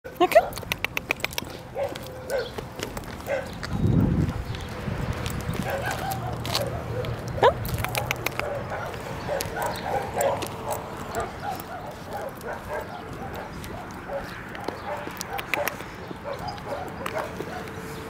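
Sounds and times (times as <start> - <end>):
footsteps on gritty road: 0.1 - 18.0
dog whimpering and yipping: 5.6 - 10.4.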